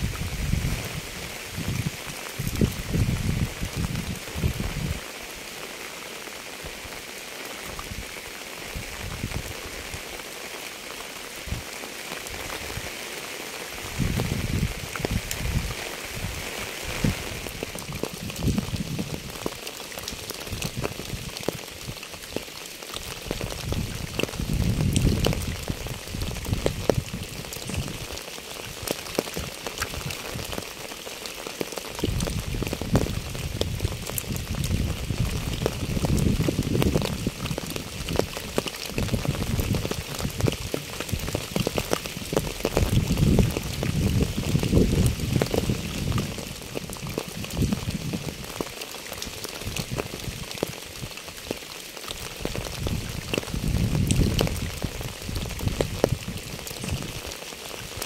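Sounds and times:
steady rain falling: 0.0s - 58.0s.

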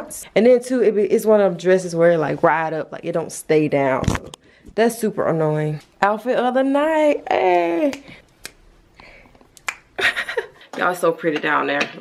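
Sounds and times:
finger snaps: 7.9s - 8.6s, 9.6s - 9.9s.

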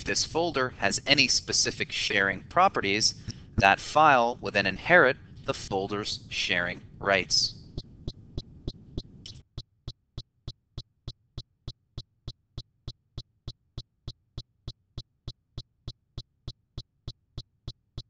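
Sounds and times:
faint hiss: 0.0s - 7.6s.

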